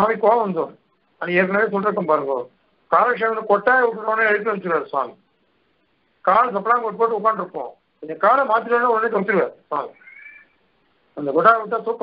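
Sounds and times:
man lecturing: 0.0s - 5.2s, 6.2s - 10.0s, 11.2s - 12.0s.

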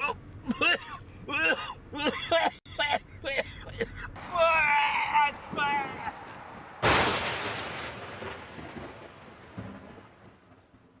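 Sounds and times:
loud boom with rumble: 6.8s - 10.2s.

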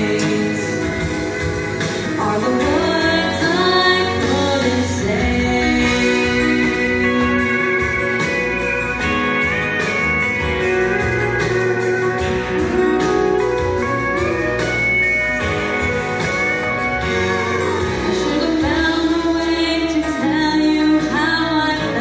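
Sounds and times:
country ballad guitar lead: 0.0s - 22.0s
steady band accompaniment: 0.0s - 22.0s.

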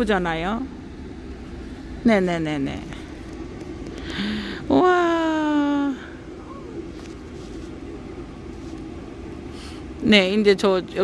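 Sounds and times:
faint hum: 0.0s - 11.0s
low background rumble: 0.0s - 11.0s.

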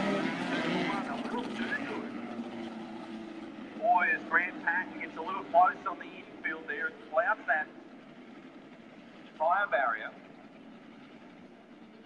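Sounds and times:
distant engines low rumble: 0.0s - 12.0s.

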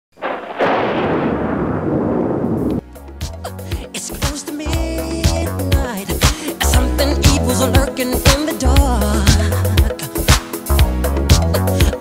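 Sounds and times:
loud rumbling crash: 0.1s - 2.9s
music with bass beat: 2.8s - 12.0s.

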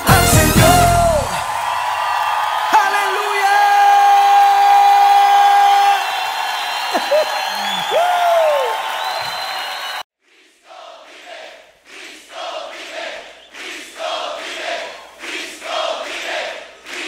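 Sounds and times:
crowd cheering and whooping: 0.7s - 10.0s.

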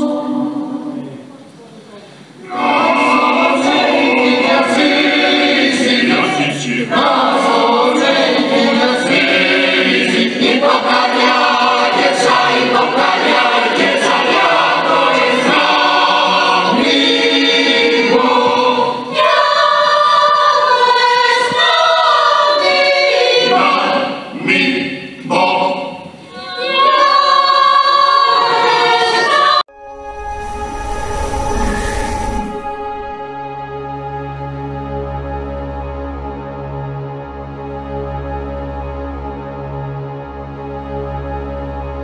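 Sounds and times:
mixed choir singing a cappella: 0.0s - 1.3s, 2.4s - 34.3s.

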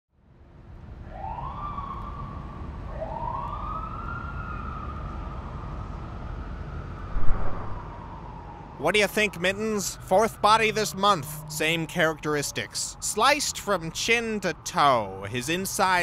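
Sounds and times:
police siren wailing: 1.1s - 16.0s
steady low rumble: 7.0s - 8.1s
short low thump: 7.1s - 7.8s.

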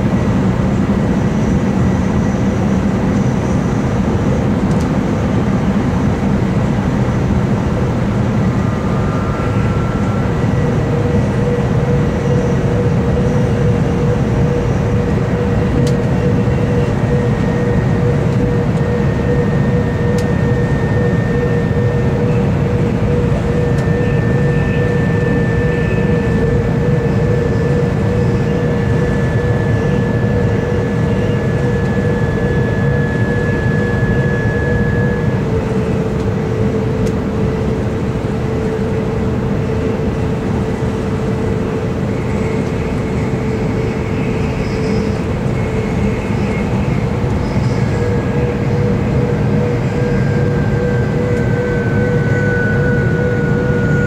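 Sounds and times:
steady whine: 0.0s - 54.0s.

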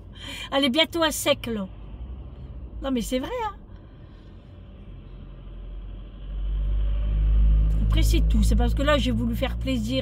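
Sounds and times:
low vehicle engine rumble: 0.0s - 10.0s.

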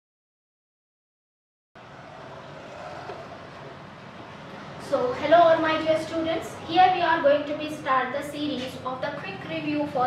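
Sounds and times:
room background noise: 1.8s - 10.0s.

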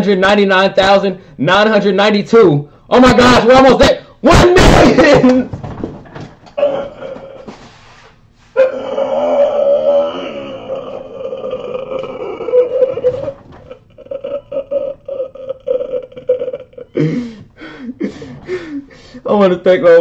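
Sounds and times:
man wailing cry: 6.6s - 7.5s, 8.6s - 17.3s
short sobbing cries: 6.6s - 7.8s, 8.6s - 18.8s.

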